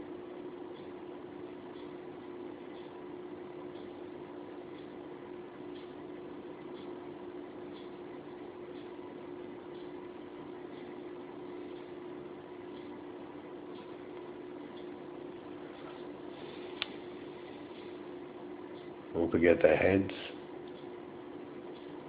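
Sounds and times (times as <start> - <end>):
faint regular ticking: 0.0 - 22.0
low background hum: 0.0 - 22.0.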